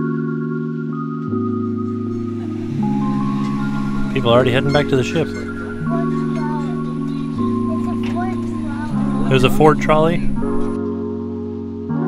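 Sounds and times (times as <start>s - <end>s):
background music held chords: 0.0s - 12.0s.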